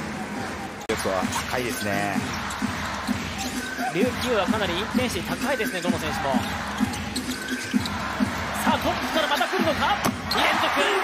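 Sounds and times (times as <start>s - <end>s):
sneakers squeaking: 5.8s - 10.8s
crowd cheering: 6.0s - 11.0s.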